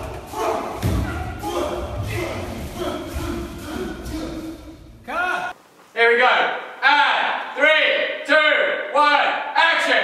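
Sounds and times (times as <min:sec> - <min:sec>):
heavy thud: 0:00.0 - 0:05.0
voices: 0:00.0 - 0:09.2.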